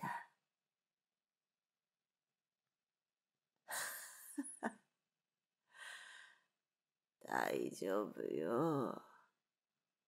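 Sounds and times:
woman breathing in: 0:05.7 - 0:06.5
woman speaking: 0:07.2 - 0:09.1.

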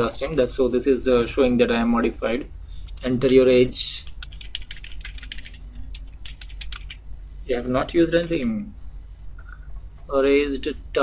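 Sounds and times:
low steady hum: 0:00.0 - 0:11.0
fast typing on keyboard: 0:04.0 - 0:07.1.

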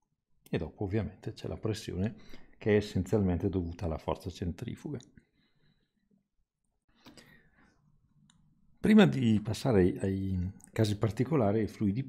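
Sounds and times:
man speaking: 0:00.5 - 0:05.1, 0:08.8 - 0:12.0.

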